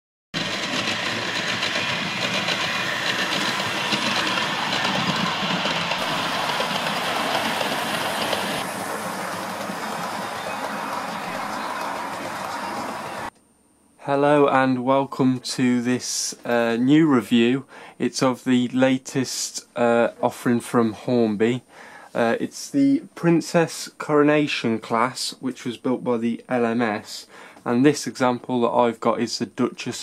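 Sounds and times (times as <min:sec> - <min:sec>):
model train wheels rattling: 0:00.4 - 0:13.2.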